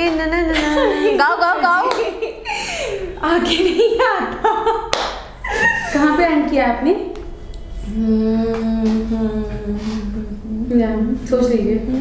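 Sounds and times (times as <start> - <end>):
woman humming a long note: 7.5 - 10.7.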